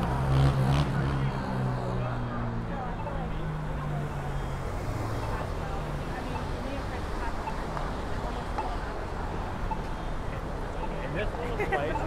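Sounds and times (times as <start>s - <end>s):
passers-by talking: 0.0s - 12.0s
traffic: 0.0s - 12.0s.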